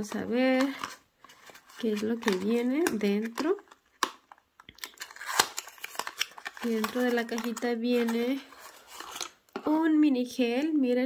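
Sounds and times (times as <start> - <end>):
cardboard box lid crackling: 0.7 - 9.4.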